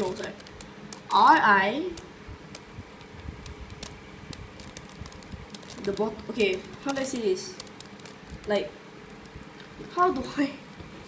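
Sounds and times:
puzzle cube clicks and rattles: 0:00.0 - 0:01.2, 0:02.6 - 0:09.7
fan humming: 0:00.0 - 0:11.0.

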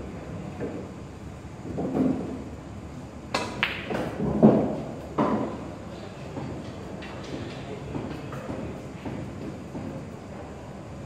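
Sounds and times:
cue striking ball: 0:03.3 - 0:05.7
ball hitting ball: 0:03.4 - 0:05.5.

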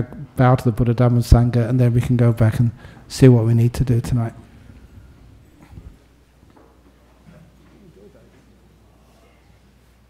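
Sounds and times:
audience moving about: 0:04.4 - 0:10.0
soft knocks and shuffles: 0:04.4 - 0:10.0.

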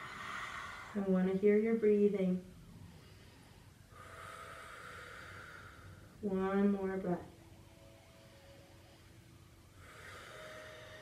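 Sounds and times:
person breathing deeply: 0:00.0 - 0:01.1, 0:02.8 - 0:06.2, 0:07.8 - 0:11.0.

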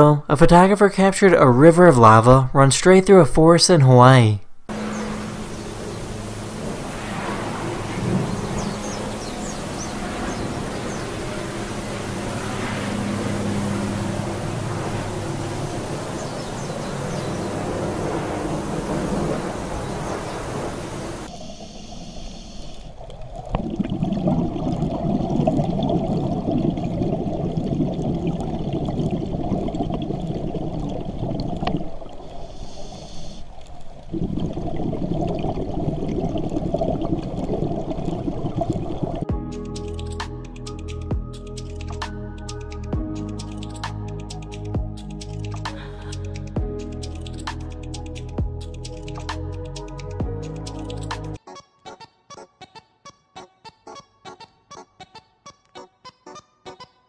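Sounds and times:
dense low crackle: 0:04.7 - 0:39.4
lava roaring: 0:05.2 - 0:21.3, 0:23.6 - 0:32.0, 0:34.1 - 0:39.3.

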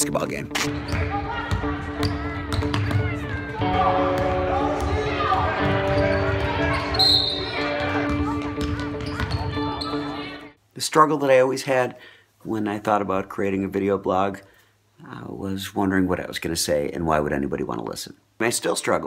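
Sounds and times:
voices of players and spectators: 0:00.6 - 0:10.6
basketball bouncing on gym floor: 0:00.7 - 0:07.0, 0:07.7 - 0:09.7.

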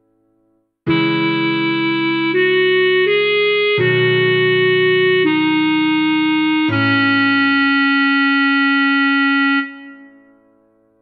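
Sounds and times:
clarinet long note: 0:00.9 - 0:10.4
held backing chord: 0:00.9 - 0:11.0.

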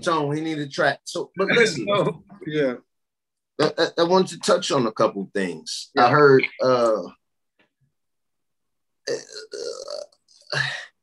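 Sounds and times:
man's rough throaty vocal sound: 0:09.1 - 0:10.9.

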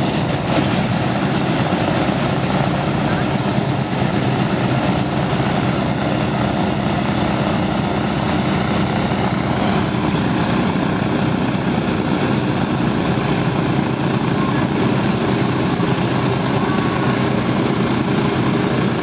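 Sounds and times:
propeller engines rumbling: 0:00.0 - 0:19.0.

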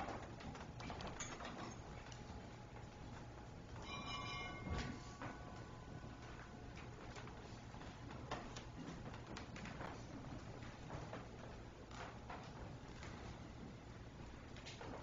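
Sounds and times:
brief high ringing tone: 0:03.8 - 0:05.8.

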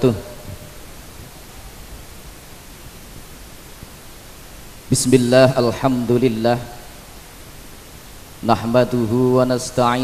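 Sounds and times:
microphone background hiss: 0:00.0 - 0:10.0
man chanting: 0:04.9 - 0:06.9, 0:08.4 - 0:10.0.

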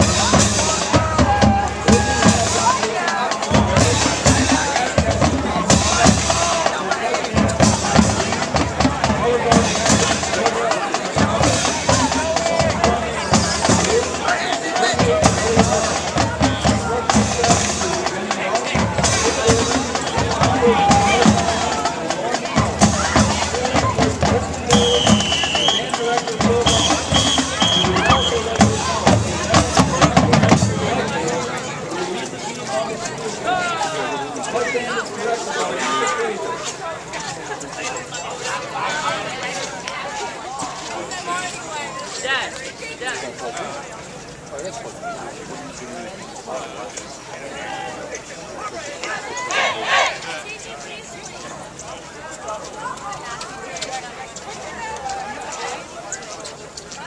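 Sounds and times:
bass drums: 0:00.0 - 0:02.8, 0:03.4 - 0:06.7, 0:07.3 - 0:10.5, 0:11.2 - 0:14.3, 0:14.9 - 0:31.1
snare drums: 0:00.0 - 0:31.5, 0:49.5 - 0:50.2
marching band playing: 0:00.0 - 0:36.1, 0:49.4 - 0:50.2.

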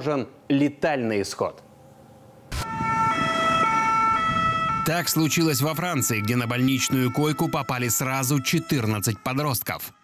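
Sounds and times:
two-tone ambulance siren: 0:02.5 - 0:10.0.

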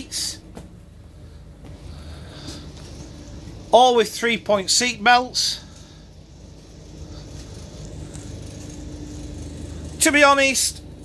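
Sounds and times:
diesel engine idling hum: 0:00.0 - 0:11.0
faint steady whine: 0:00.0 - 0:11.0.

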